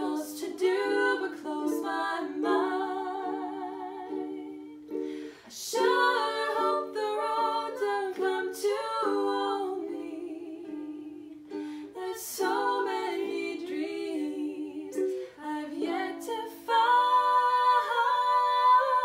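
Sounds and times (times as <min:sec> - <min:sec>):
women singing gently: 0:00.0 - 0:04.9, 0:05.5 - 0:19.0
ukulele strumming: 0:00.0 - 0:19.0.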